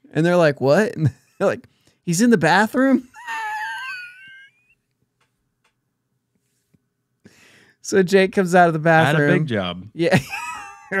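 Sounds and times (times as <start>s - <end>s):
man's squealing laugh: 3.1s - 4.8s.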